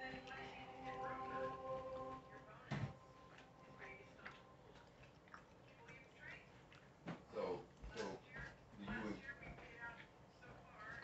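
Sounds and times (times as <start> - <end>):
chewing and mouth noises: 0.0 - 11.0
faint background music: 0.0 - 11.0.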